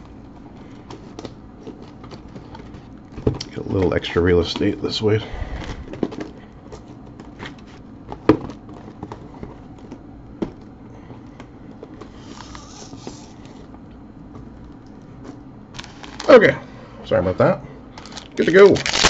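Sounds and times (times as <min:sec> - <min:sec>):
foil packs crinkling: 0:15.8 - 0:16.5, 0:17.9 - 0:19.0.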